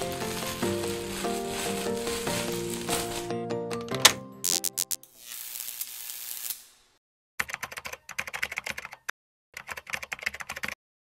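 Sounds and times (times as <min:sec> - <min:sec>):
rapid keyboard key clicks: 0:07.4 - 0:09.0, 0:09.6 - 0:10.8.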